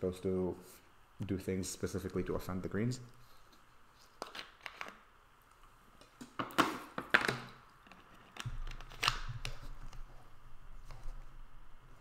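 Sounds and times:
low steady hum: 0:07.5 - 0:12.0.

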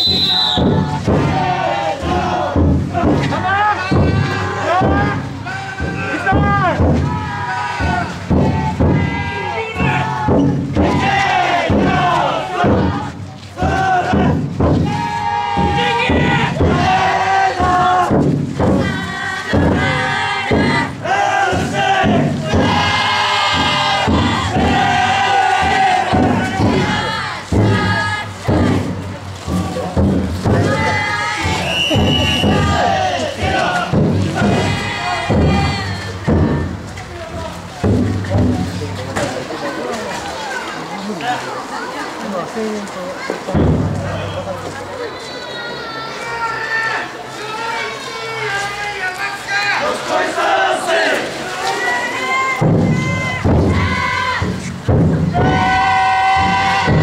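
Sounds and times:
group shouting call-and-response chants: 0:00.0 - 0:37.8, 0:45.1 - 0:57.0.

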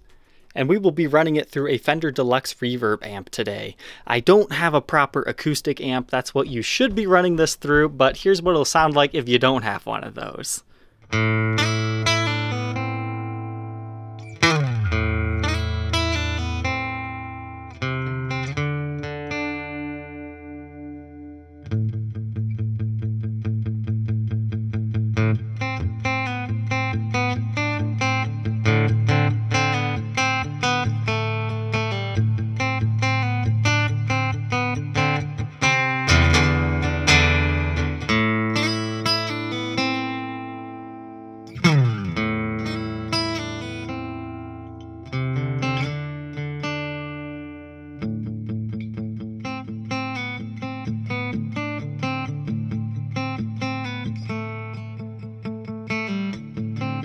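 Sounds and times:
acoustic guitar strumming: 0:11.0 - 0:57.0.

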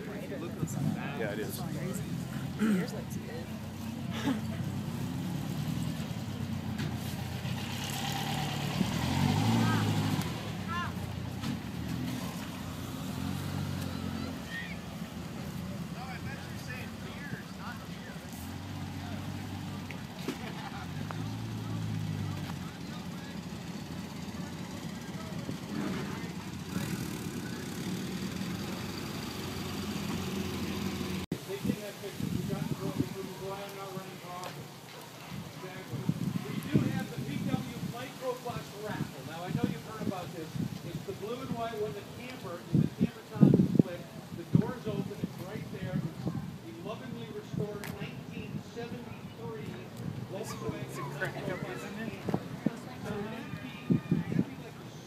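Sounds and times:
people talking: 0:00.0 - 0:04.9, 0:15.5 - 0:27.8, 0:31.3 - 0:55.0.

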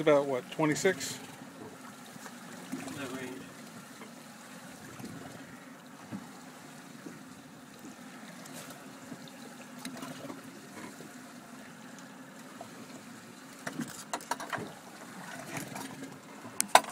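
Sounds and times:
boat engine low hum: 0:00.0 - 0:16.9
faint water sounds: 0:00.0 - 0:16.9.

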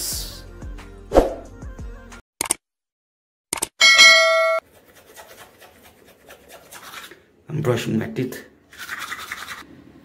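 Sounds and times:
quick clicks: 0:03.5 - 0:03.8
bright bell ding: 0:03.8 - 0:04.6
toothbrush scrubbing: 0:04.6 - 0:07.3, 0:08.7 - 0:09.7.

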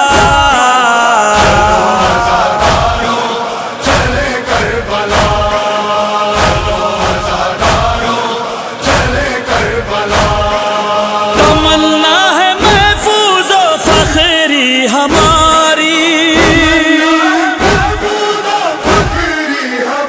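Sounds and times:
men chanting: 0:00.0 - 0:20.0
sharp steady beat: 0:01.4 - 0:05.7.

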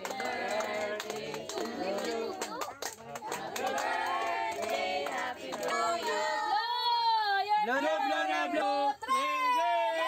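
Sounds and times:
mixed voices singing: 0:00.0 - 0:02.5, 0:03.3 - 0:07.0.

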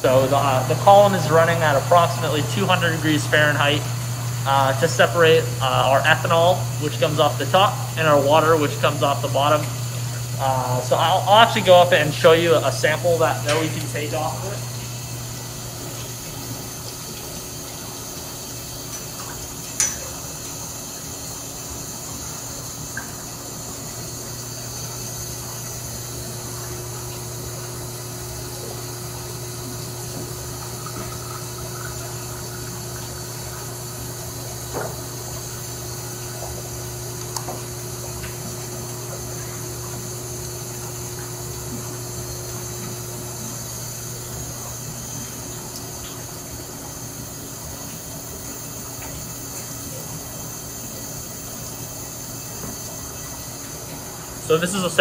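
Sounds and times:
distillation column hum and hiss: 0:00.0 - 0:55.0.

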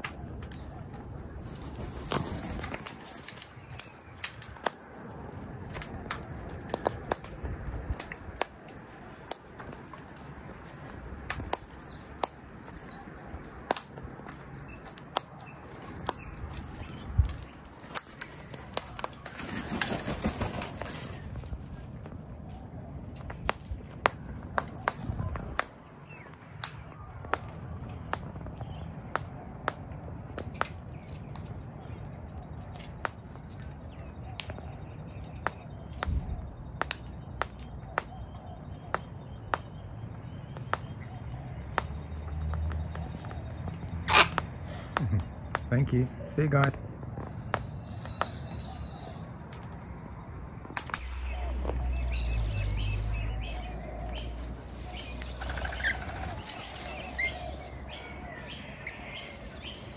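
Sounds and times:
cockatoo cracking seed clicks: 0:03.7 - 0:10.2, 0:13.6 - 0:16.6.

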